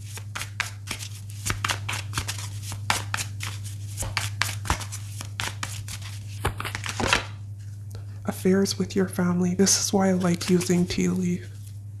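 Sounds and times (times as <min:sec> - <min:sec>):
cards being shuffled by hand: 0:00.0 - 0:07.4, 0:10.0 - 0:11.9
steady low hum: 0:00.0 - 0:12.0.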